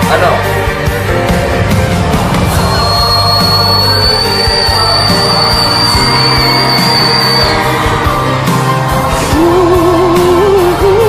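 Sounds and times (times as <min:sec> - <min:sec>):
man singing high whistle note: 0:02.6 - 0:08.5.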